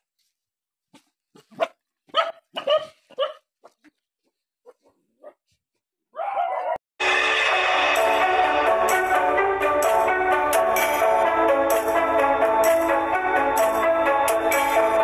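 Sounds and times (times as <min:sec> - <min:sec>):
dogs barking: 0:01.4 - 0:03.8
music: 0:07.0 - 0:15.0.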